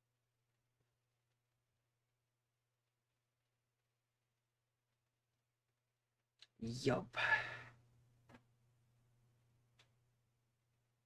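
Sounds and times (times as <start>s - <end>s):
man speaking a word: 6.6s - 7.5s
man sighing: 7.2s - 7.8s.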